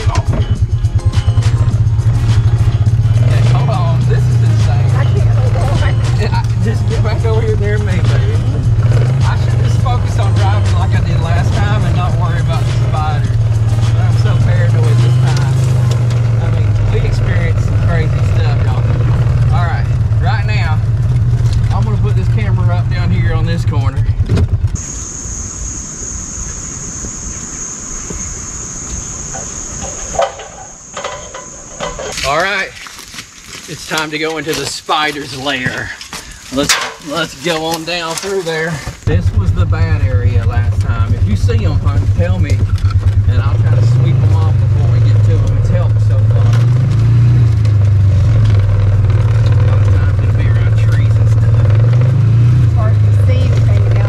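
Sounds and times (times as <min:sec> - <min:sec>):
off-road vehicle engine running: 0:00.0 - 0:54.0
knocks and rattles: 0:12.6 - 0:24.8, 0:35.6 - 0:52.4
steady high-pitched buzz: 0:24.8 - 0:32.6.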